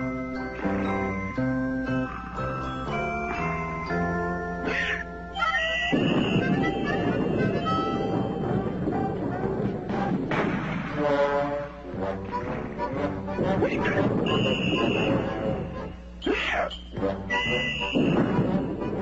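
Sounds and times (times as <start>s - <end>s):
cartoon background music: 0.0s - 19.0s
noisy cartoon sound effects: 4.6s - 9.6s, 12.3s - 19.0s.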